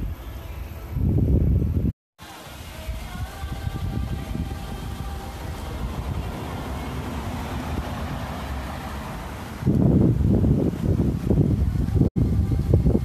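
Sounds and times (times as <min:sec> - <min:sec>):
wind on microphone: 0:00.0 - 0:01.9, 0:02.6 - 0:13.0
road traffic rumble: 0:02.2 - 0:13.0.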